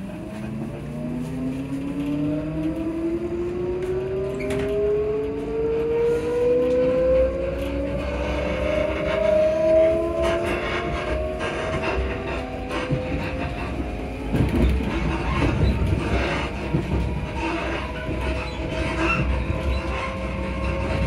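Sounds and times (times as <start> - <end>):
electric train motors whining: 0.3 - 21.0.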